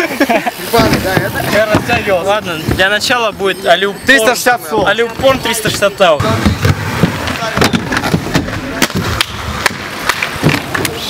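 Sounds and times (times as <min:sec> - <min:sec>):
inline skates rolling on concrete: 0:00.0 - 0:03.5, 0:04.3 - 0:11.0
clacks and knocks from skates: 0:05.2 - 0:11.0.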